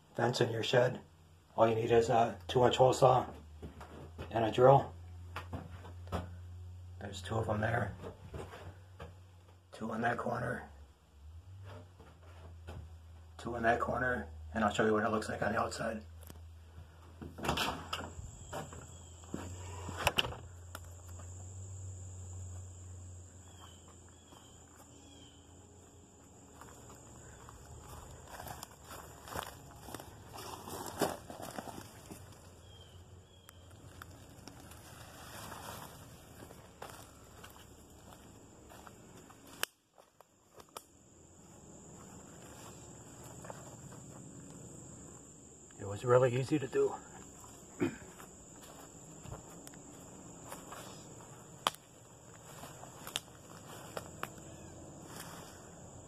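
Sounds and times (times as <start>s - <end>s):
footsteps: 18.0s - 21.5s, 23.5s - 25.0s, 25.8s - 32.6s, 33.7s - 40.7s, 41.4s - 45.3s, 47.1s - 55.8s.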